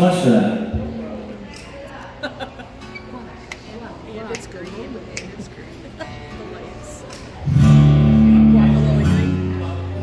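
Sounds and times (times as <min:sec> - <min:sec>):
acoustic guitar chord strummed: 0:07.4 - 0:10.0.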